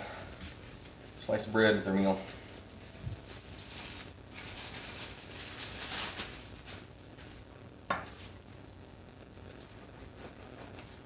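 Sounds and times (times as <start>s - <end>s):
plastic bag crinkling: 0.2s - 8.4s.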